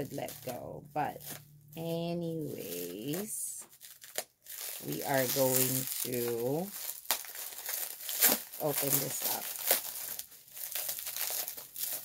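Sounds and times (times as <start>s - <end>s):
packaging crinkling and rustling: 0.0s - 1.6s, 2.2s - 12.0s.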